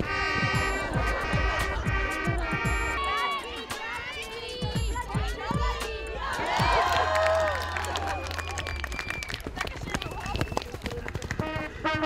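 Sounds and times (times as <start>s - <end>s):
brass horn fanfare: 0.0s - 3.4s, 11.4s - 12.0s
spectators' voices: 0.0s - 11.4s.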